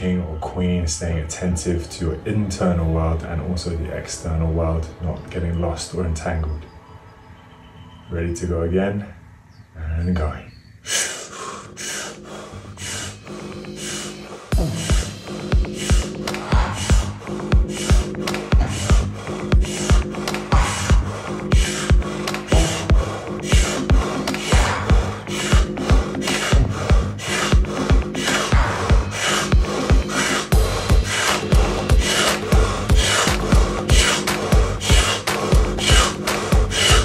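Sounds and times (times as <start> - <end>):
man breathing quickly through mouth: 10.8 - 37.0
background music with low beat: 11.7 - 37.0.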